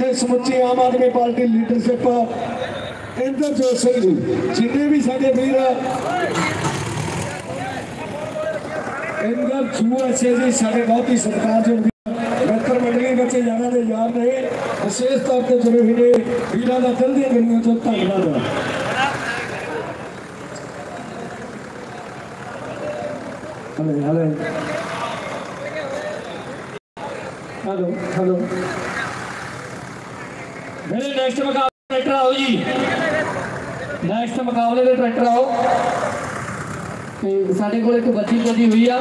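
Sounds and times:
crowd din: 0.0 - 31.0, 31.9 - 37.4
tractor engines running hard: 0.0 - 39.0
announcer speaking: 7.4 - 19.8, 30.9 - 36.0.

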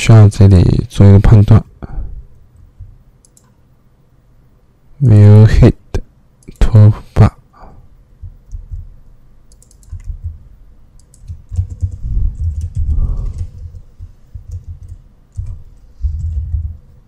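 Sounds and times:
typing on keyboard: 2.6 - 3.6, 9.5 - 10.4, 11.0 - 16.8.

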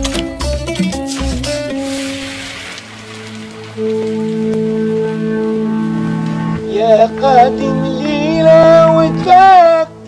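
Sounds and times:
held musical notes: 0.0 - 10.0
food sizzling in hot oil: 1.1 - 4.4.

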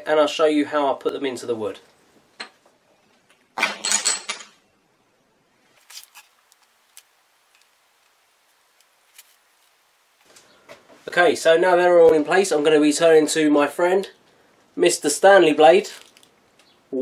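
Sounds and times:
rustling noise: 5.6 - 11.2.

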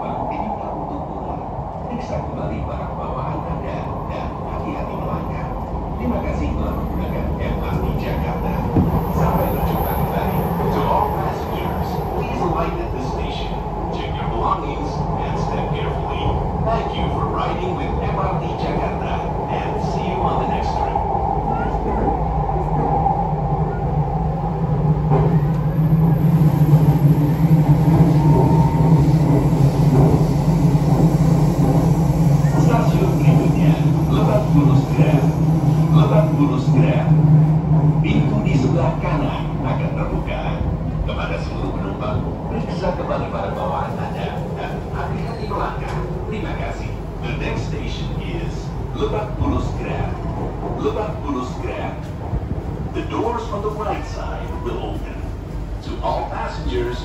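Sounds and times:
train running hum: 0.0 - 57.0
train wheels rumbling on rail: 0.0 - 57.0.

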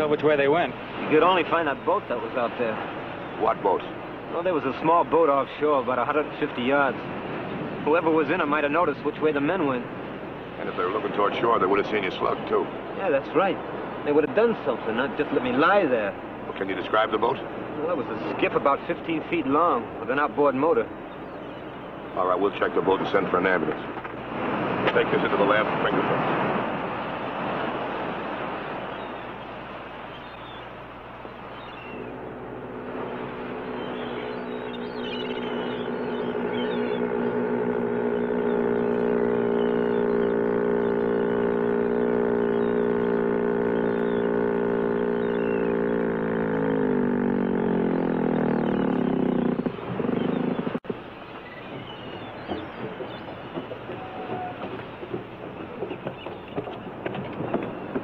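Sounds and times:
motorboat engine running: 0.0 - 58.0.

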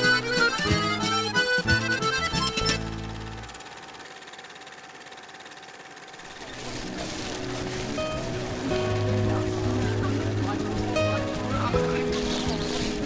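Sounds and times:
background music: 0.0 - 3.6, 7.0 - 13.0
accordion tune: 0.0 - 3.8, 6.6 - 13.0.

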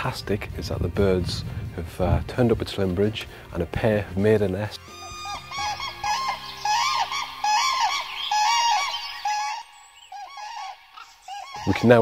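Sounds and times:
cranes bugling calls: 4.8 - 12.0.

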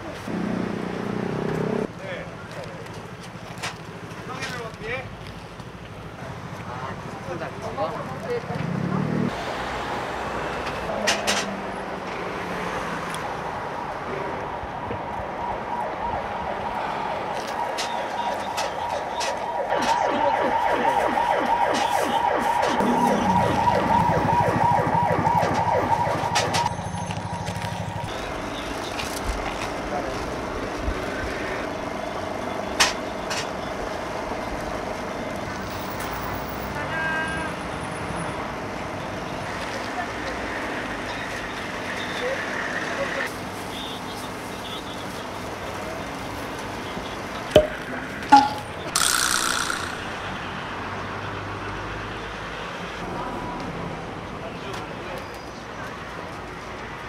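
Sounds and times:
street background noise: 0.0 - 57.0
emergency siren wailing: 13.5 - 28.3.

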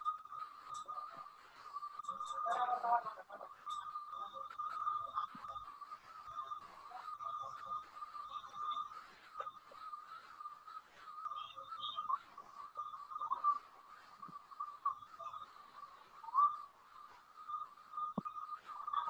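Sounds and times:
faint clicks: 0.0 - 19.0
high-pitched whistle-like tone: 0.0 - 19.0.

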